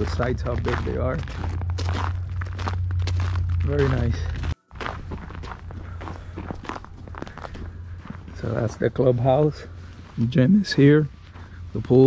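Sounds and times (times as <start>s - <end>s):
footsteps on snow: 0.0s - 12.0s.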